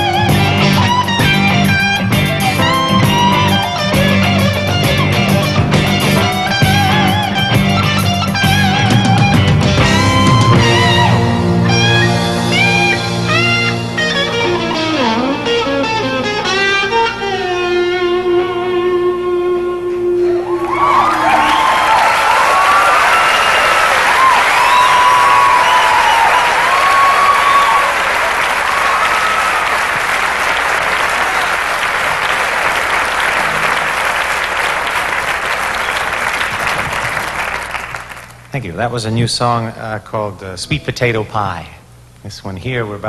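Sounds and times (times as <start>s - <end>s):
live band playing: 0.0s - 21.9s
electric guitar: 0.0s - 22.8s
audience applause and cheering: 20.4s - 38.5s.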